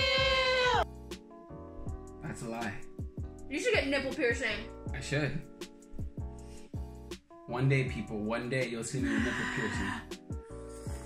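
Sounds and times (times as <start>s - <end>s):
music with steady beat: 0.0s - 9.0s
man yelling: 9.0s - 10.0s.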